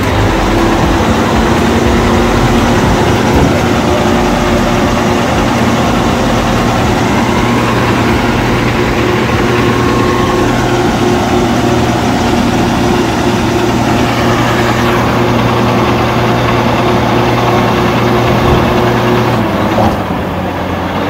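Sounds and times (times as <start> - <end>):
heavy diesel engine running: 0.0 - 21.0.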